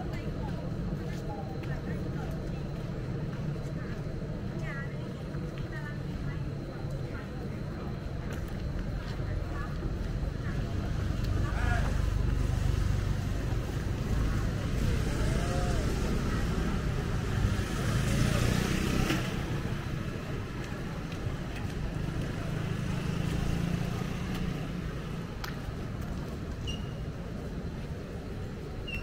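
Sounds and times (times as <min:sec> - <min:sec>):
people's voices: 0:00.0 - 0:28.9
motor scooters passing: 0:11.1 - 0:26.4.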